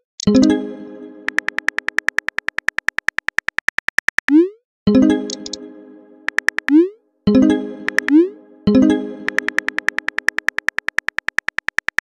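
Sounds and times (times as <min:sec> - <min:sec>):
phone keyboard clicks: 0:01.3 - 0:04.3, 0:06.3 - 0:06.8, 0:07.9 - 0:08.2, 0:09.3 - 0:12.0.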